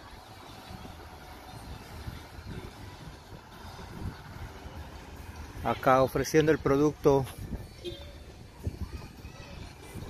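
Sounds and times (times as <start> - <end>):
distant traffic rumble: 0.0 - 10.0.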